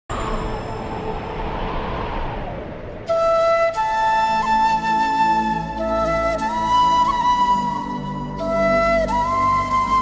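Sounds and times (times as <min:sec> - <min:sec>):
rush of noise: 0:00.1 - 0:05.8
flute melody: 0:03.0 - 0:10.0.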